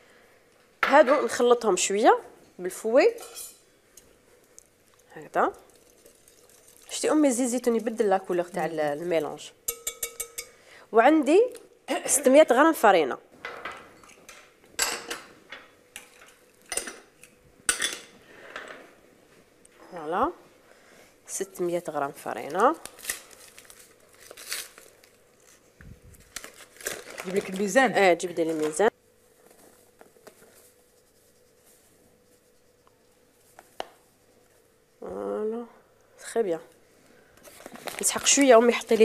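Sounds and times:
kitchen utensils and bowls clinking: 5.6 - 10.6
flour sifting through sieve: 29.4 - 34.6.

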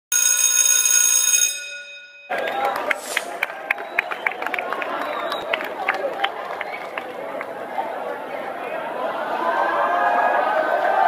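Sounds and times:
bell-like chime: 0.1 - 2.3.

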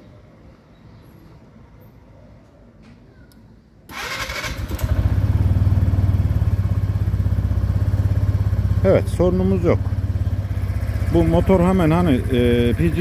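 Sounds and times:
scooter engine starter cranking: 3.9 - 8.4
scooter engine idling: 4.0 - 13.0.

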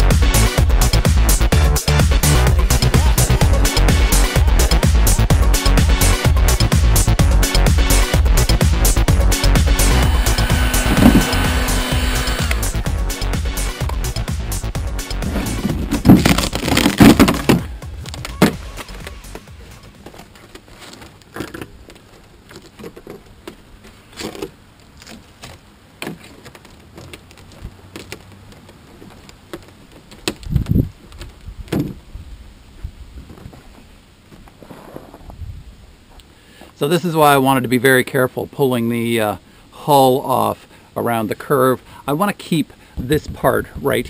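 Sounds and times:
electronic music with steady beat: 0.0 - 15.6, 17.5 - 20.0
plywood cracking as pried off: 16.0 - 18.6.

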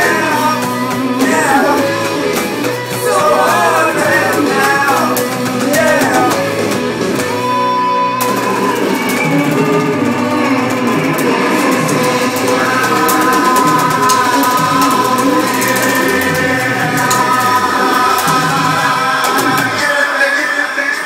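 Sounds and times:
person singing: 0.0 - 7.2, 8.8 - 21.0
live rock band playing: 0.0 - 19.8.

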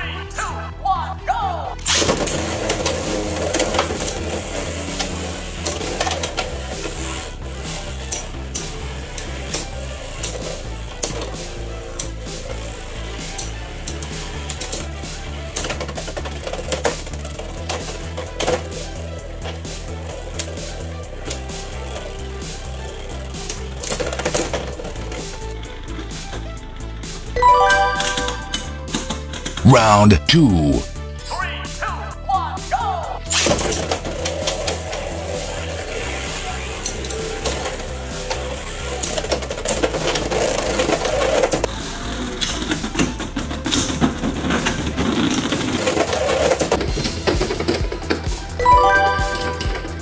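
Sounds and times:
background music with beat: 27.4 - 28.9, 48.6 - 50.0.

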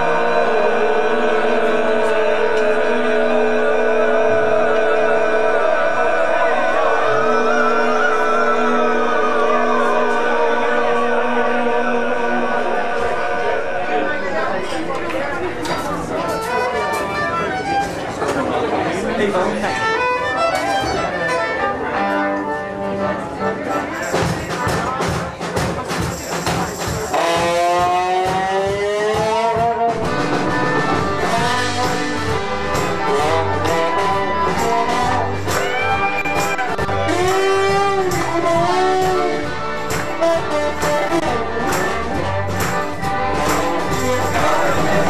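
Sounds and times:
live band playing: 6.8 - 18.5, 19.3 - 45.0.

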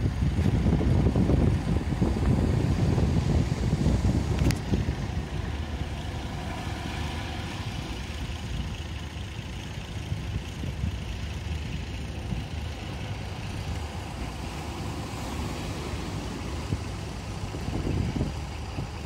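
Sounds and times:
boat engine running: 0.0 - 19.0.

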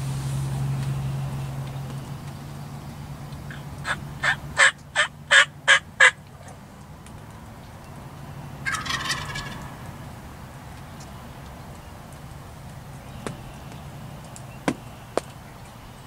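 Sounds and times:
turkey gobble: 3.5 - 6.6, 8.6 - 9.8
turkey yelps: 3.5 - 6.6, 8.6 - 9.8.

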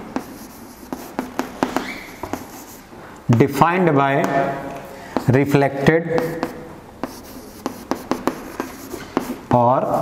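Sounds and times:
chalk tapping and dragging on board: 0.2 - 2.8, 6.1 - 9.6.

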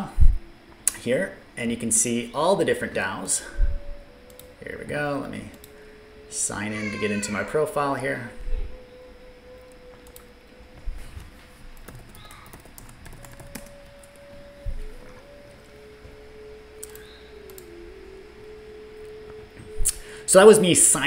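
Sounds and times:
quiet held tone: 0.0 - 21.0.

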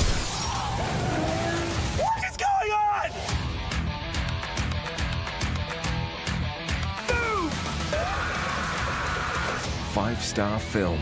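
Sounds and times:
crash of shattering glass: 0.0 - 0.6
music: 0.5 - 11.0.

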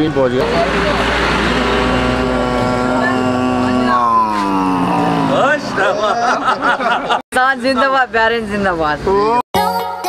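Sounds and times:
man shouting a long note: 1.7 - 5.4.

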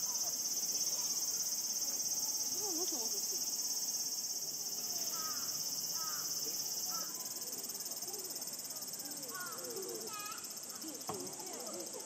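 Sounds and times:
insects droning: 0.0 - 12.0.

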